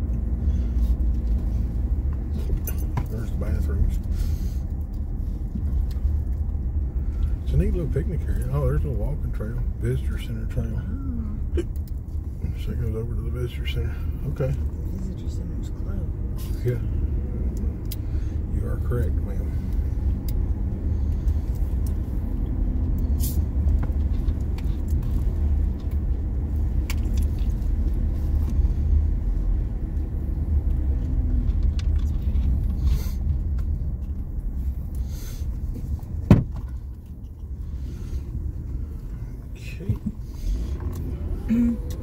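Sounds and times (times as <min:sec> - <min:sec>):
tyre and engine rumble: 0:00.0 - 0:42.0.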